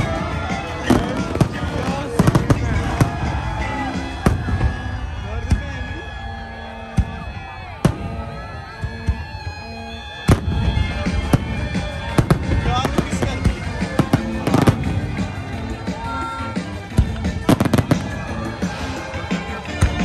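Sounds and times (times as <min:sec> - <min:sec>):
fireworks bangs and crackles: 0:00.0 - 0:20.0
music playing: 0:00.0 - 0:20.0.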